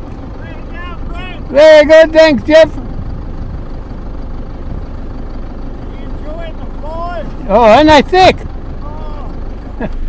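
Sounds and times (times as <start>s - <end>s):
diesel truck engine idling: 0.0s - 10.0s.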